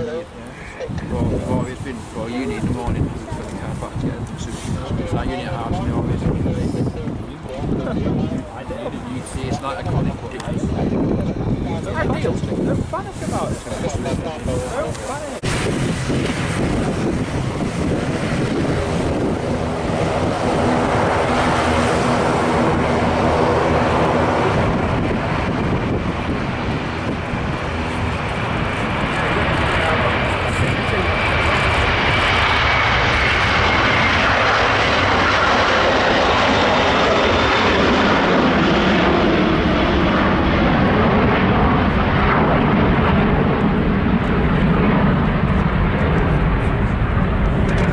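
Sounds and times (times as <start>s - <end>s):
jet engines at takeoff thrust: 0.0s - 47.9s.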